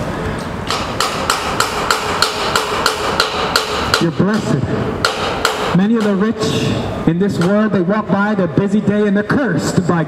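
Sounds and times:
street background noise: 0:00.0 - 0:10.0
hammer blows: 0:00.4 - 0:08.6.

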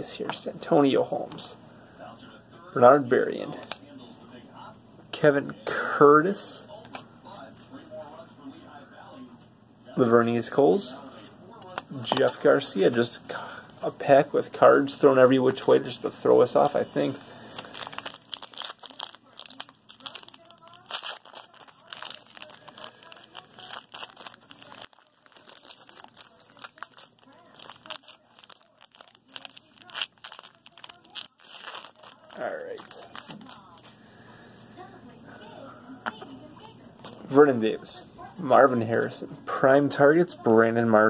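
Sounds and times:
foil wrapper crinkling and tearing: 0:17.5 - 0:34.0.

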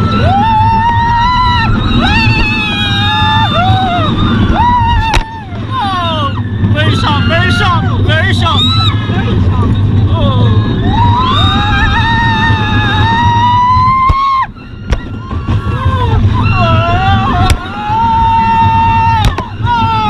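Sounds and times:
coaster car rumbling on track: 0:00.0 - 0:20.0
riders screaming: 0:00.0 - 0:20.0.

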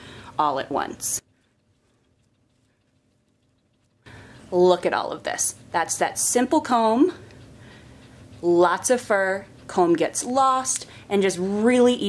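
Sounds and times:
very faint ticks: 0:01.2 - 0:05.1.

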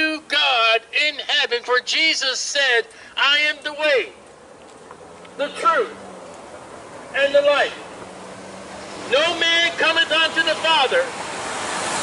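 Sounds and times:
man speaking: 0:00.0 - 0:04.2, 0:05.4 - 0:06.0, 0:07.1 - 0:07.9, 0:09.1 - 0:11.1
faint outdoor background noise: 0:00.0 - 0:12.0.

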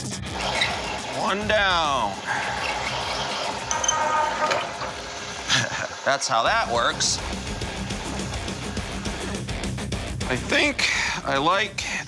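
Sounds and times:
hole saw cutting metal: 0:00.2 - 0:05.8.

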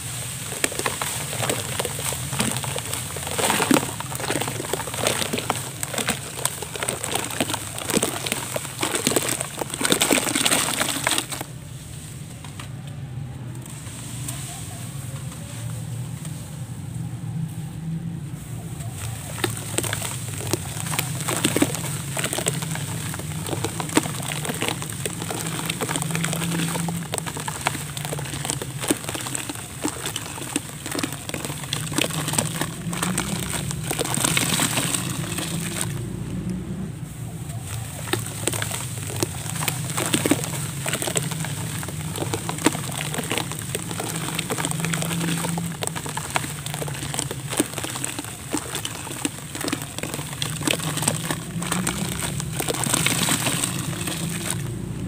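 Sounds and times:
crackles and patters of grains: 0:00.0 - 0:55.0
sand pouring into foamy water: 0:19.3 - 0:36.3, 0:38.0 - 0:54.9.

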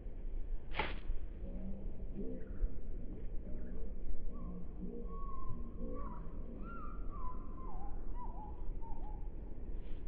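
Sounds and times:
bird singing whistled notes: 0:04.4 - 0:09.2.

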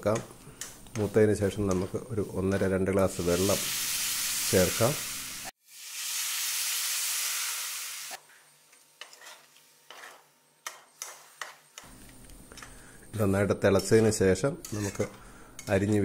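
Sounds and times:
water sizzling in hot pan: 0:03.2 - 0:08.2.

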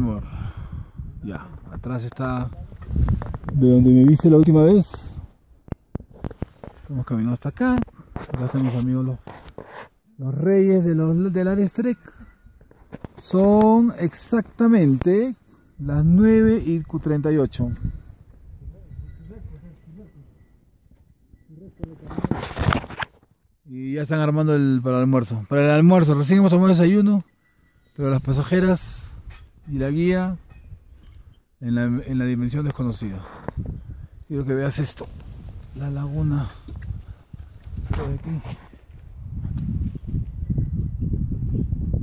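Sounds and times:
wind buffeting microphone: 0:00.0 - 0:06.6, 0:15.7 - 0:20.5, 0:28.2 - 0:31.6, 0:32.6 - 0:42.0
phone rustling against jacket: 0:05.8 - 0:07.0, 0:21.8 - 0:23.3.

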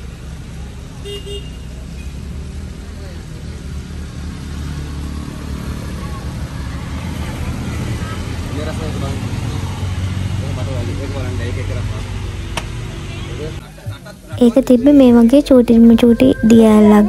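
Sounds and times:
vehicle engine humming: 0:00.0 - 0:17.0
people talking quietly: 0:05.6 - 0:17.0.

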